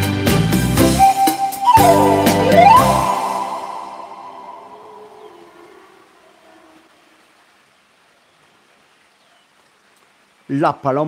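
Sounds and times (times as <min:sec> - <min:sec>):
backing track: 0:00.5 - 0:05.9
pan flute note with reverb: 0:00.8 - 0:05.9.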